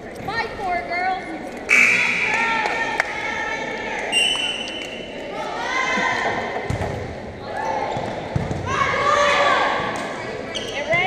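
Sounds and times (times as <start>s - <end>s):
people shouting in a gym: 5.3s - 6.6s, 7.4s - 11.0s.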